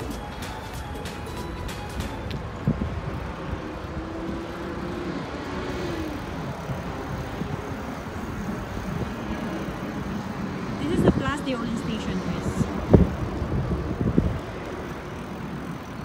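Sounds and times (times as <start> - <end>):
traffic noise: 0.0 - 16.0.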